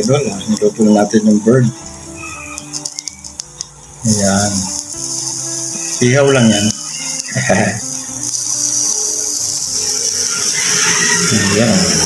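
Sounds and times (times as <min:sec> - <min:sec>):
insects buzzing: 0:00.0 - 0:12.0.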